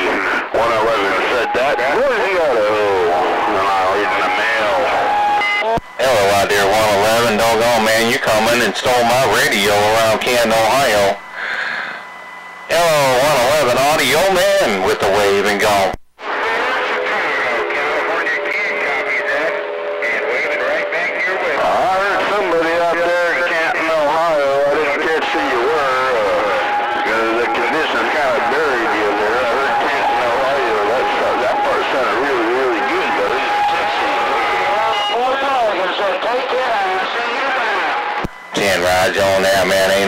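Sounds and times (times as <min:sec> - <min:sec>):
garbled radio voices: 0:00.0 - 0:40.0
radio noise: 0:00.0 - 0:40.0
carrier tone whistle: 0:00.1 - 0:14.5, 0:22.4 - 0:40.0.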